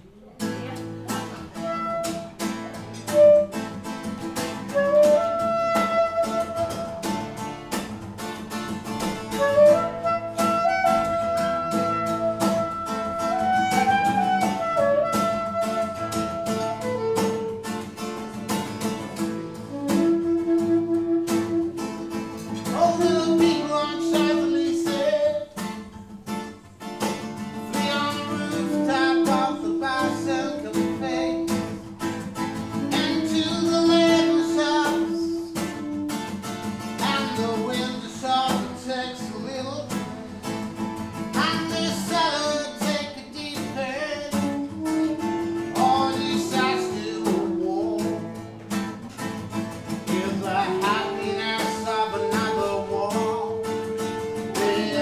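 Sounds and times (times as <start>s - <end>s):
acoustic guitar plucked chords: 0.0s - 55.0s
saxophone melody: 0.9s - 25.6s, 27.5s - 38.9s, 43.9s - 49.6s, 50.2s - 55.0s.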